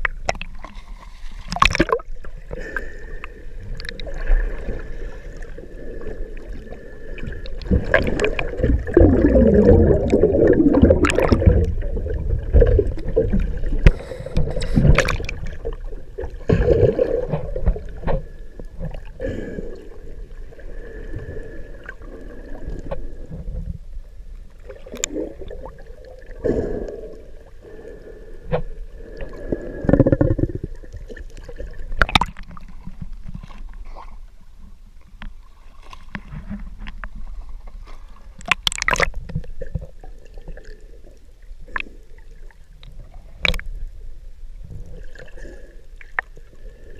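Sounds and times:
water churning and bubbling: 0:00.0 - 0:46.9.

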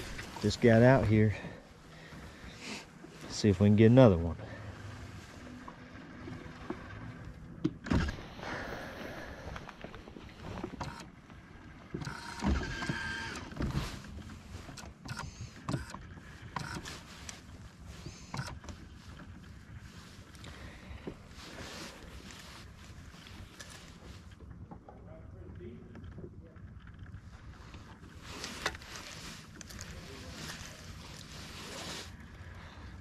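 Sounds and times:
low steady haze: 0:00.0 - 0:10.6, 0:16.2 - 0:25.9.

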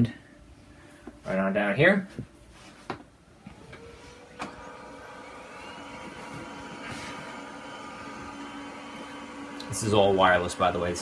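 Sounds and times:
printer motors and fan humming: 0:03.4 - 0:11.0
rising printer whine: 0:03.4 - 0:11.0.

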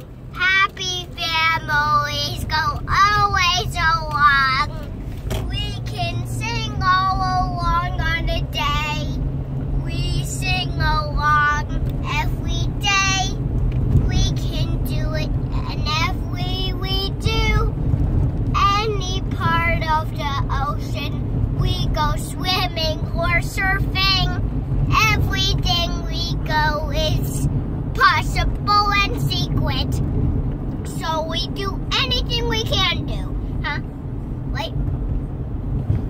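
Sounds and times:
car road and engine hum: 0:00.0 - 0:36.0
child singing: 0:00.4 - 0:09.2, 0:09.8 - 0:13.4, 0:14.0 - 0:17.7, 0:18.6 - 0:27.4.

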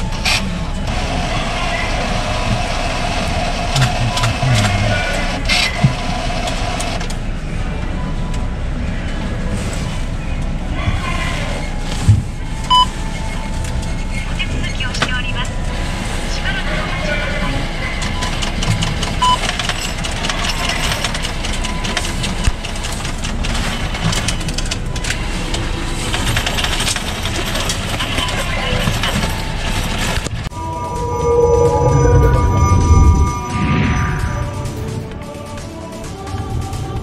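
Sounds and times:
steady background rumble: 0:30.4 - 0:37.0.

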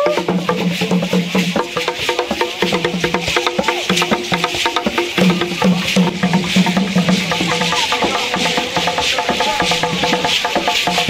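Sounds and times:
rapid clicking percussion: 0:00.0 - 0:11.0
steady rattling hiss: 0:00.2 - 0:11.0.

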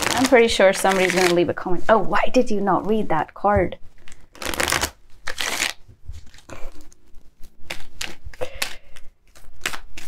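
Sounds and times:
cards being shuffled: 0:00.0 - 0:01.4, 0:04.0 - 0:10.0.

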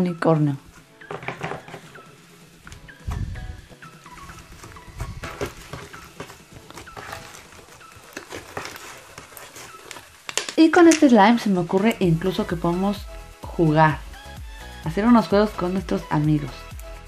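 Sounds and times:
dull low thumps: 0:03.0 - 0:03.8.

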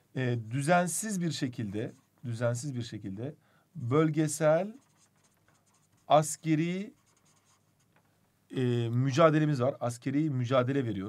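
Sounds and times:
marker writing on paper: 0:04.7 - 0:08.0.

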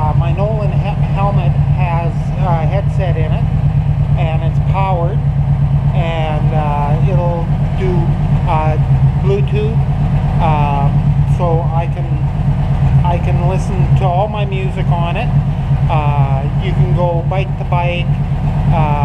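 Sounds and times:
man talking: 0:00.0 - 0:03.5, 0:04.1 - 0:05.2, 0:05.9 - 0:09.8, 0:10.4 - 0:12.3, 0:13.0 - 0:19.0
motorcycle engine idling: 0:00.0 - 0:19.0.

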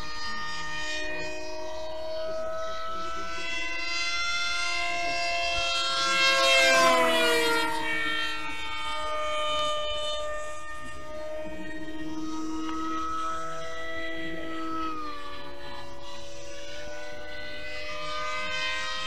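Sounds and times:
model airplane motor whining: 0:00.0 - 0:19.0.

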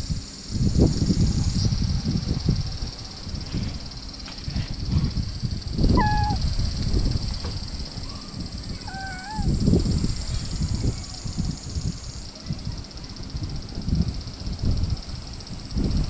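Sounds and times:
low rumbling microphone noise: 0:00.0 - 0:16.0
cat meowing softly: 0:05.9 - 0:06.4, 0:08.8 - 0:09.6.

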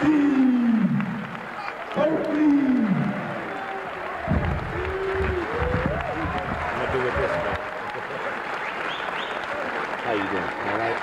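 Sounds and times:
crowd applause: 0:00.0 - 0:11.0.

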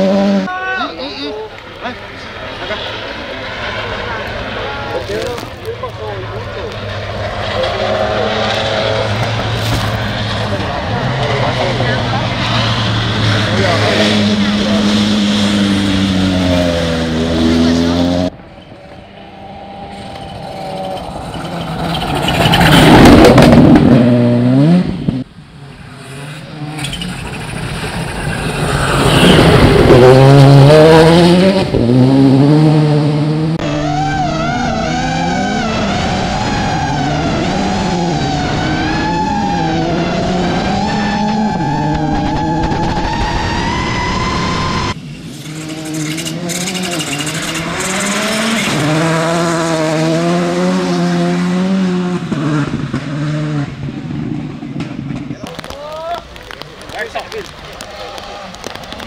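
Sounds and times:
rally car engines at full throttle: 0:00.0 - 0:59.0.

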